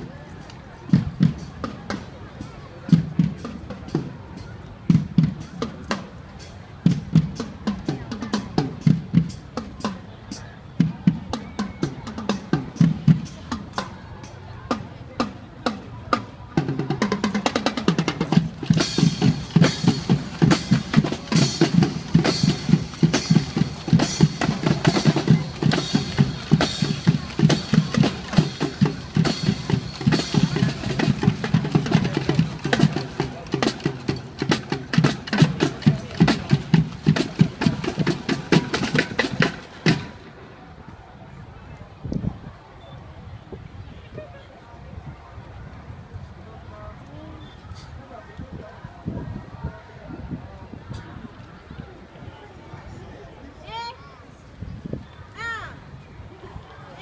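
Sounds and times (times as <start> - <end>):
snare and bass drums: 0.0 - 40.4
marching band playing: 0.0 - 40.8.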